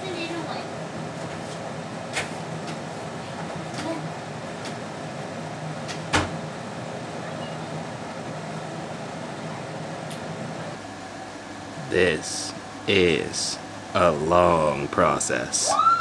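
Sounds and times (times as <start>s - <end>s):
low room hum: 0.0s - 16.0s.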